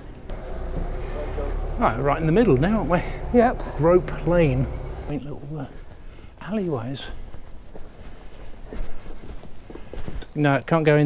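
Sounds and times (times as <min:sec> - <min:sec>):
footsteps on cobblestones: 0:01.6 - 0:10.9.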